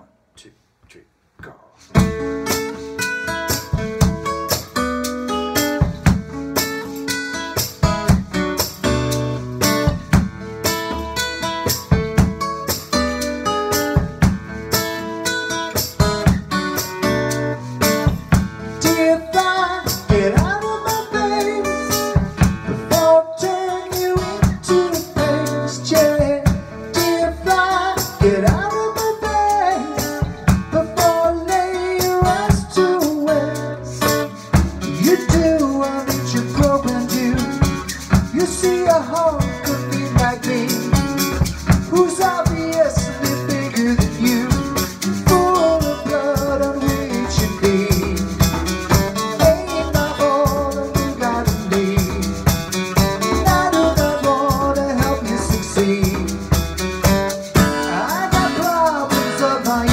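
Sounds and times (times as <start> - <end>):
acoustic guitar playing: 1.8 - 59.9
percussion in steady rhythm: 1.8 - 59.9.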